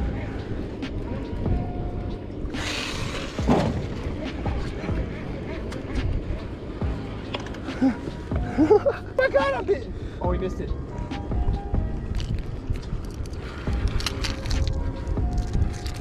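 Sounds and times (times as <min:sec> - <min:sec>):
wind and water rumble: 0:00.0 - 0:16.0.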